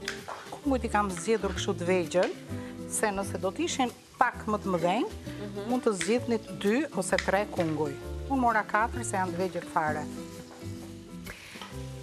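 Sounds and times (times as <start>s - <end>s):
background music: 0.0s - 12.0s
chicken sizzling in a pan: 0.0s - 12.0s.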